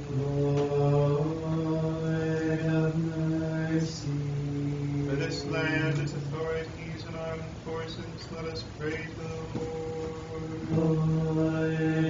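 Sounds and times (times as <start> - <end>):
man chanting: 0.1 - 12.0.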